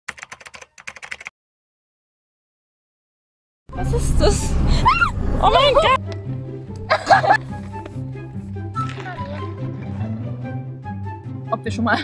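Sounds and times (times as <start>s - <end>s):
computer keyboard typing clicks: 0.1s - 1.3s.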